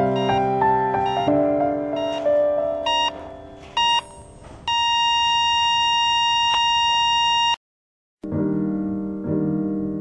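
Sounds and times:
patient monitor beeps: 0:00.0 - 0:01.4, 0:02.0 - 0:07.6
monitor flatline tone: 0:00.0 - 0:07.6.

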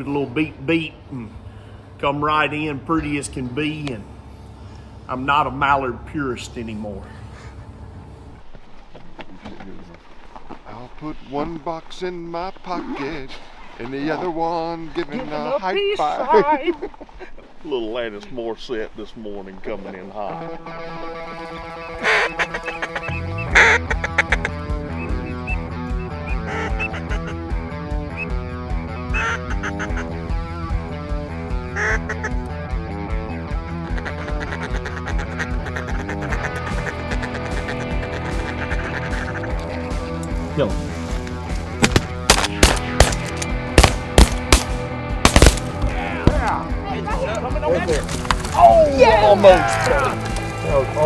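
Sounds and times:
duck call quacking: 0:20.3 - 0:27.6, 0:29.0 - 0:30.2, 0:31.6 - 0:32.4, 0:33.7 - 0:39.8
background music: 0:20.3 - 0:51.0
loud sharp bangs: 0:41.8 - 0:46.4.

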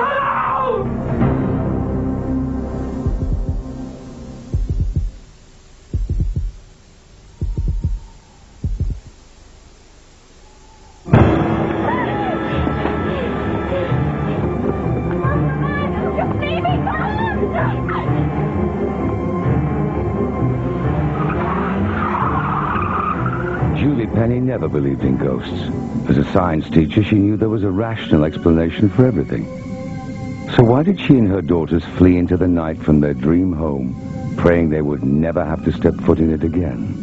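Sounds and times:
quiet sustained hum: 0:00.9 - 0:21.2
heartbeat thumps: 0:03.0 - 0:09.4, 0:12.3 - 0:17.6
car tyres skidding and squealing: 0:21.0 - 0:23.8.

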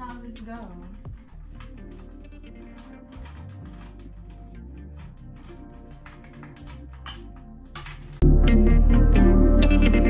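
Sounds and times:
quiet background music with bass: 0:00.0 - 0:10.0.

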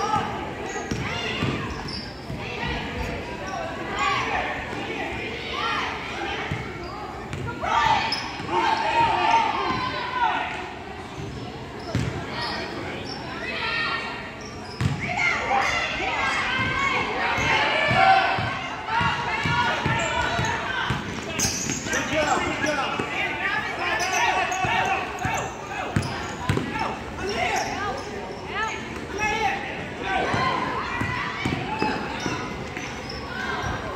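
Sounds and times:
basketball bouncing on gym floor: 0:11.9 - 0:12.2.

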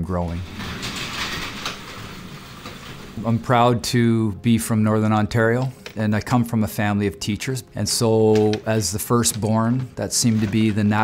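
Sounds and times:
garage door rattling along tracks: 0:00.1 - 0:04.1.

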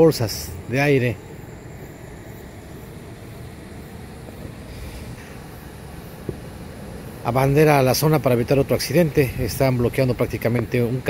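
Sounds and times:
low outdoor rumble: 0:00.0 - 0:11.0
road traffic: 0:00.0 - 0:11.0.

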